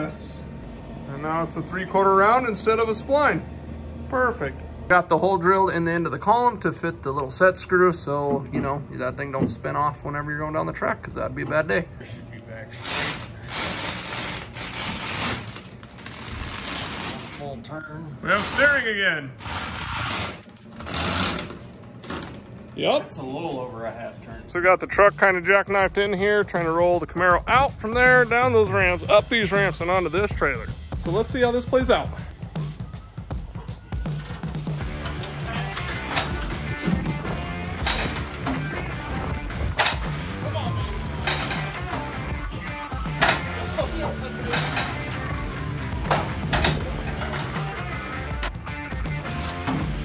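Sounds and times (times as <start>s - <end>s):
background music with steady beat: 23.7s - 50.0s.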